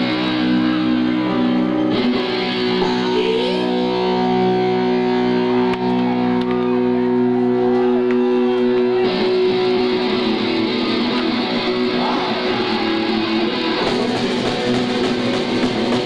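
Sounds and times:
bass guitar: 0.0s - 16.0s
distorted electric guitar chords: 0.0s - 16.0s.

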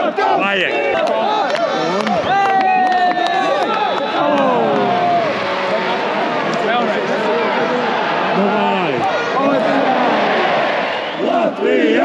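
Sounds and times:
crowd shouting and singing: 0.0s - 12.0s.

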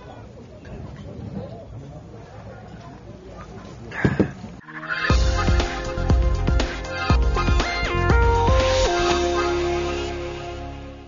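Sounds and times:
chicken calling: 4.6s - 8.1s
music: 5.1s - 11.0s.

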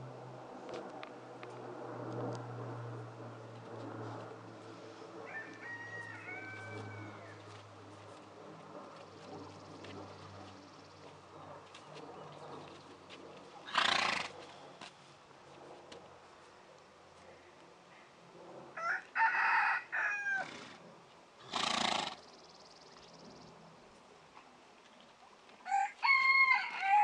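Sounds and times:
rooster crowing: 5.2s - 7.5s, 18.8s - 20.6s, 25.6s - 27.0s
horse whinnying: 13.7s - 14.3s, 21.4s - 22.2s.

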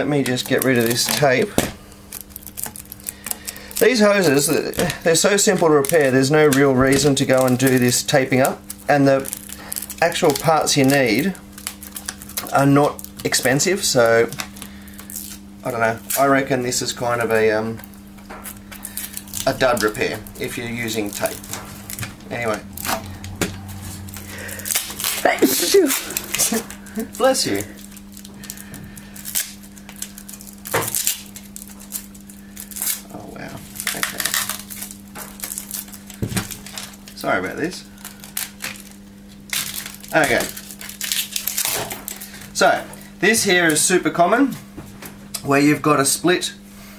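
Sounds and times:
tape scratching and clicks: 0.0s - 43.9s
low steady hum: 0.0s - 46.9s.

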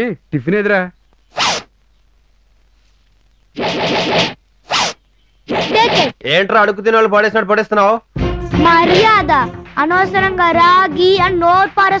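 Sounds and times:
jacket zipper pulled: 1.3s - 1.7s, 3.6s - 6.1s.

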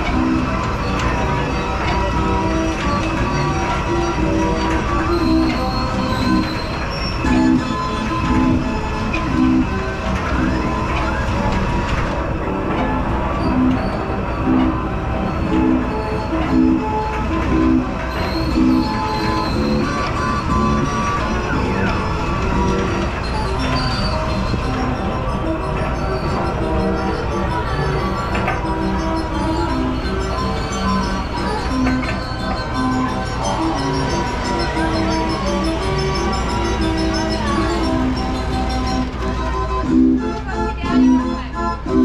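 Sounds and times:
carousel machinery rumble: 0.0s - 42.0s
carousel music: 0.0s - 42.0s.

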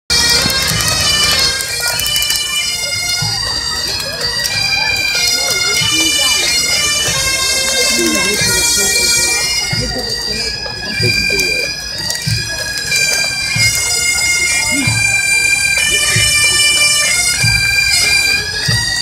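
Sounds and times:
bagpipes playing marching tune: 0.1s - 19.0s.

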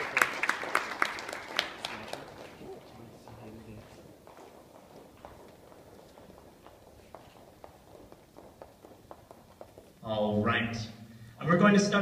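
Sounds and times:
shoes clicking on wooden floor: 2.6s - 10.1s.

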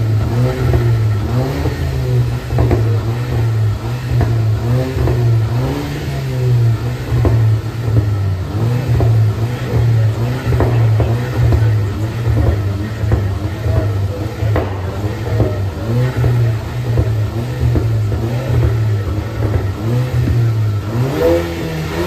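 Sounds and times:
car engine revving: 0.0s - 22.0s
exhaust cracks: 0.0s - 22.0s.

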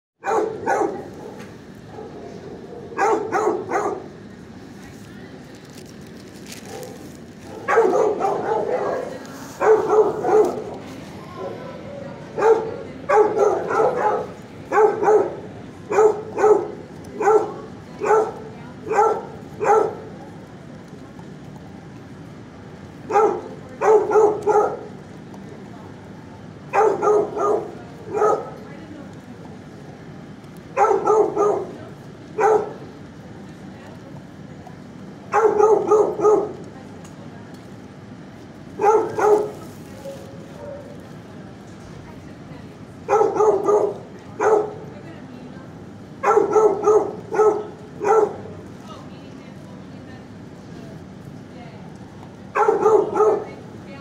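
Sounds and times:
dog barking: 0.2s - 4.1s, 6.6s - 11.7s, 12.3s - 20.1s, 23.1s - 24.9s, 26.7s - 28.6s, 30.8s - 31.8s, 32.4s - 32.8s, 35.3s - 36.6s, 38.8s - 41.0s, 43.1s - 44.9s, 46.2s - 48.5s, 52.5s - 53.6s.

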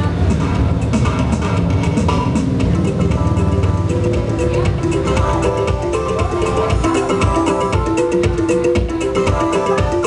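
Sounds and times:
backing track drum beat and bass: 0.0s - 10.0s
steel pans playing: 0.0s - 10.0s.

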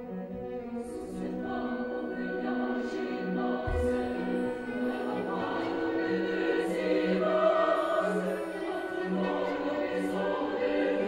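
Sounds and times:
women's opera chorus singing: 0.0s - 11.0s.

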